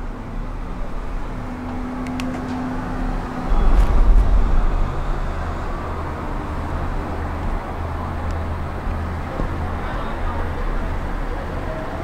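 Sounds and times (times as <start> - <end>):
gondola cabin rumbling along cable: 0.0 - 12.0.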